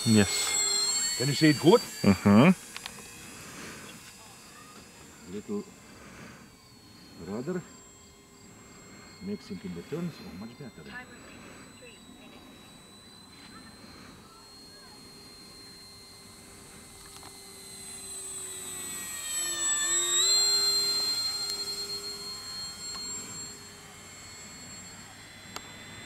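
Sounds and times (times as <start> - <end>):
model plane motor whining: 0.0 - 26.0.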